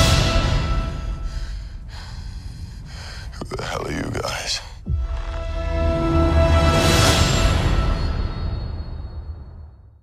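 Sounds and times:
trailer music: 0.0 - 2.7, 4.8 - 10.0.

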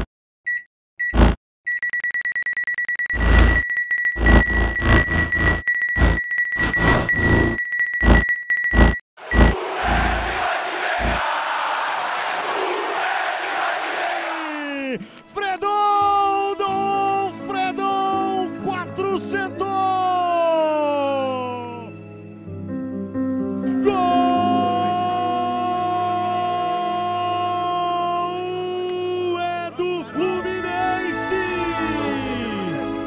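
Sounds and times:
short electronic beeps: 0.0 - 9.6
steady high beep: 0.5 - 10.0
fast even ticking: 2.8 - 10.2
music: 15.0 - 33.0.

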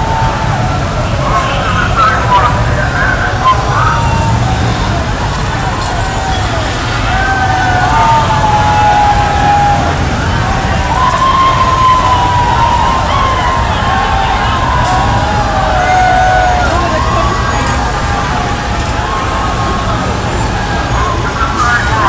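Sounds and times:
crowd noise: 0.0 - 22.0
police sirens wailing: 0.0 - 22.0
traffic noise: 0.0 - 22.0.

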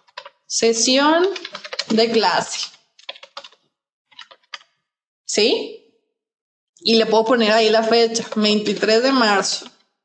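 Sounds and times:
computer keyboard typing clicks: 0.0 - 0.4, 1.2 - 4.7.

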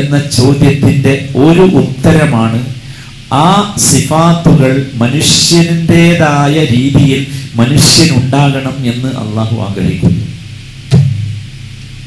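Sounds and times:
steady low hum: 0.0 - 12.0
sharp thump: 10.9 - 11.5.

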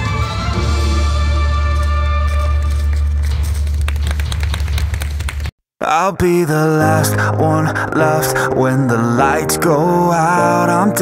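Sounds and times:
hand clapping: 2.3 - 5.5.

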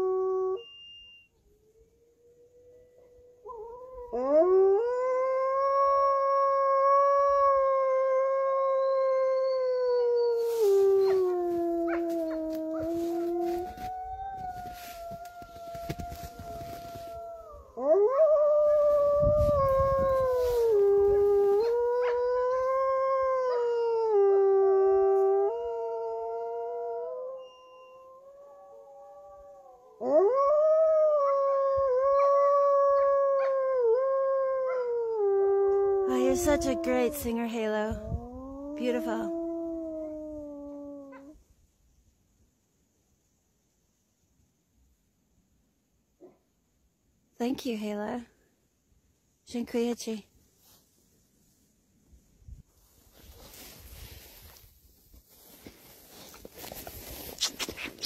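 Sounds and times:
wolf howling: 1.7 - 41.4
crackling and rustling: 10.4 - 17.4, 18.5 - 22.2, 52.8 - 58.0.

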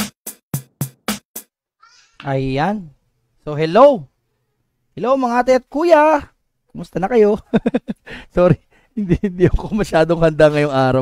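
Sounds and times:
electronic drum machine hits: 0.0 - 1.2.

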